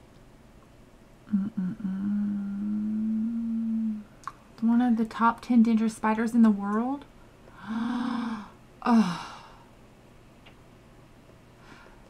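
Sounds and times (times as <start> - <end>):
woman humming: 1.3 - 4.1, 7.6 - 9.6.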